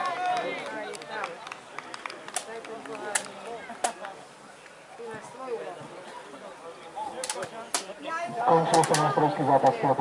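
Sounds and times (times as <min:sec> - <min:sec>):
faint distant voices: 0:00.0 - 0:10.0
man speaking close to microphone: 0:08.4 - 0:10.0.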